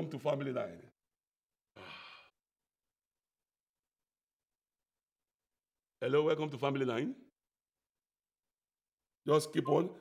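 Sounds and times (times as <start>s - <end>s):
man sighing: 1.8s - 2.3s.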